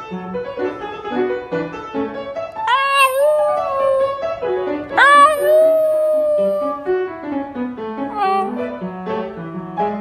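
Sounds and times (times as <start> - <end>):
piano music: 0.0 - 10.0
dog howling: 2.7 - 4.2, 5.0 - 6.9, 8.1 - 8.6.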